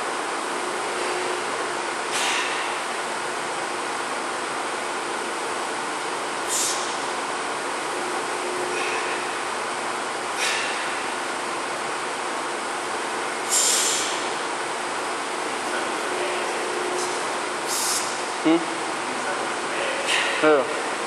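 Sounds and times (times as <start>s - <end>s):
short sharp hisses: 2.1s - 2.8s, 6.5s - 7.0s, 13.5s - 14.3s, 17.7s - 18.1s.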